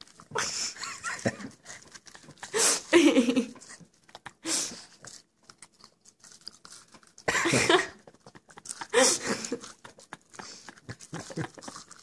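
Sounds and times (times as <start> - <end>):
dog chewing clicks: 9.6 - 12.0.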